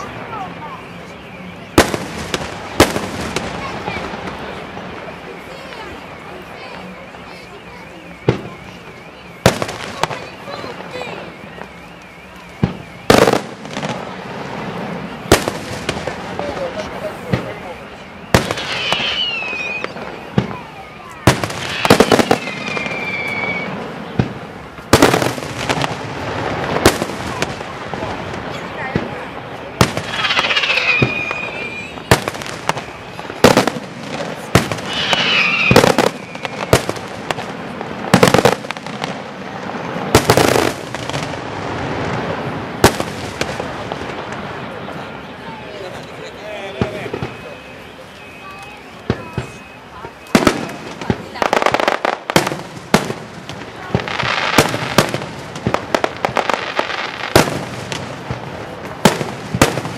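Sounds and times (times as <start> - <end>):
firework shells bursting: 29.8 - 39.2.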